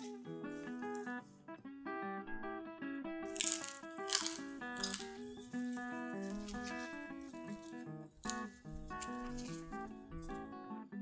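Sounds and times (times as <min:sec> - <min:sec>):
light plucked background music: 0:00.0 - 0:11.0
flatbread crackling pulled apart: 0:03.3 - 0:10.4.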